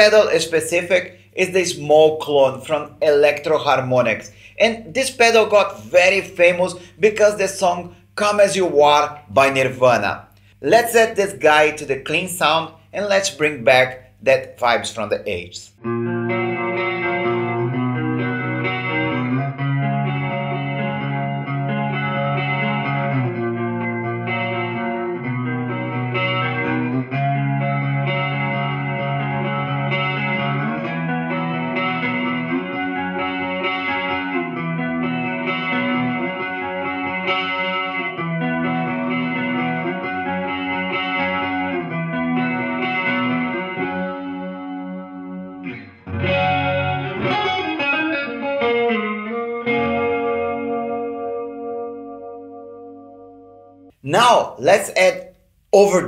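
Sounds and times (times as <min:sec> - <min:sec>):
electric guitar chords with chorus: 0:15.8 - 0:54.0.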